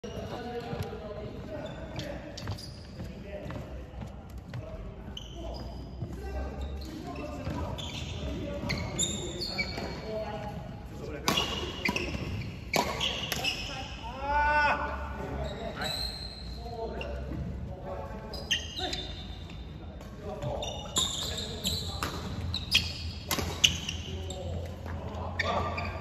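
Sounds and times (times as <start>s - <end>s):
shoes squeaking on wooden floor: 0.0s - 13.9s, 15.2s - 26.0s.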